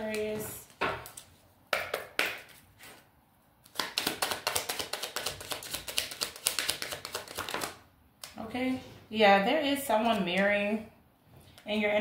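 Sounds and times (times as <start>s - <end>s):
cards being shuffled: 3.6s - 8.4s.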